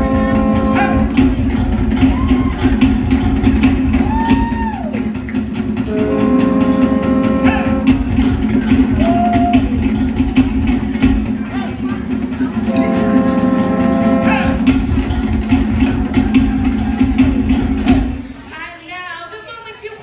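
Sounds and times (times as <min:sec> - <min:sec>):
conch shell trumpets blown: 0:00.0 - 0:01.2, 0:05.9 - 0:08.0, 0:12.7 - 0:14.7
show music with steady drumbeat: 0:00.0 - 0:18.4.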